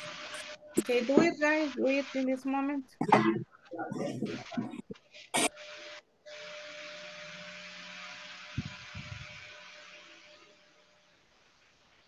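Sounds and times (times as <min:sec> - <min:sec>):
faint hum: 0:00.0 - 0:12.0
microphone hiss: 0:00.0 - 0:12.0.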